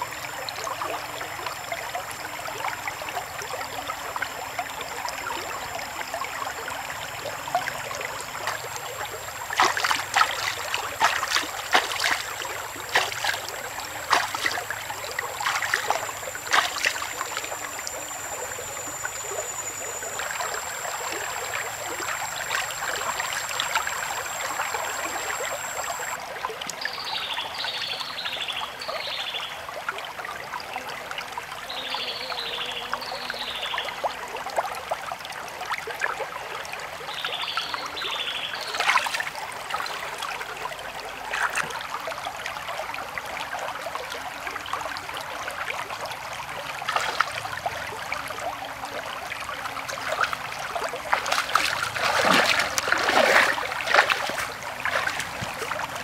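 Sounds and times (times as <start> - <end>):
stream running over rocks: 0.0 - 56.0.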